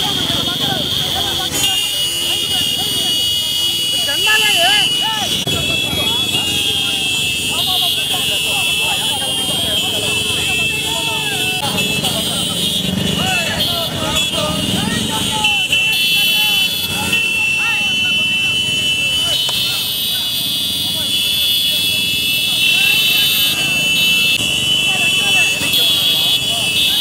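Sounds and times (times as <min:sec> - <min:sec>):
crowd shouting: 0:00.0 - 0:27.0
motorcycle engines running: 0:00.0 - 0:27.0.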